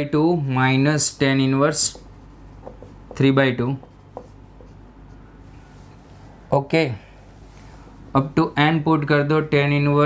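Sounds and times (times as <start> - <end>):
marker writing on whiteboard: 1.8 - 5.2.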